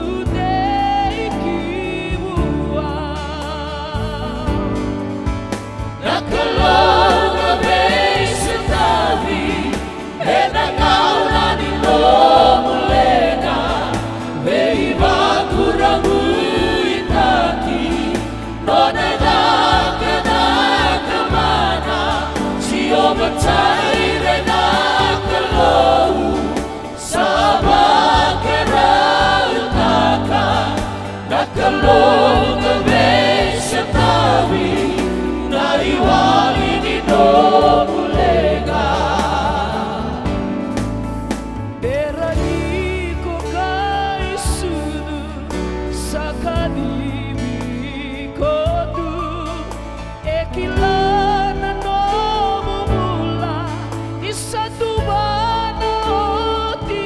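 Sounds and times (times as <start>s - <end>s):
group singing a hymn in harmony: 0.0s - 57.0s.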